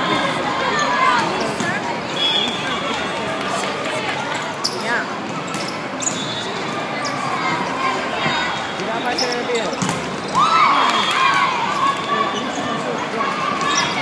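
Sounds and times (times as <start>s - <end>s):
voices talking and calling out: 0.0s - 14.0s.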